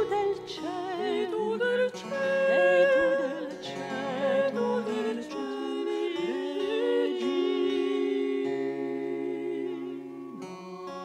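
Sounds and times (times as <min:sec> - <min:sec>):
women singing in harmony: 0:00.0 - 0:10.6.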